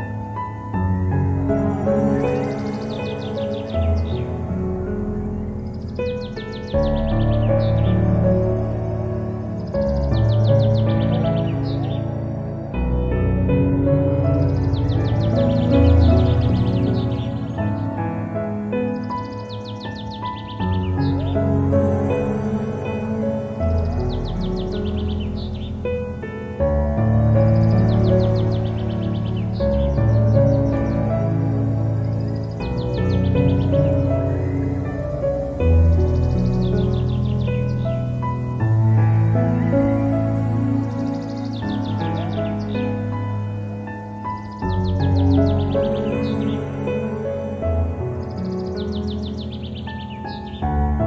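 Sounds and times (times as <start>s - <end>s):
birds chirping: 0.0s - 51.0s
calm instrumental music: 0.0s - 51.0s.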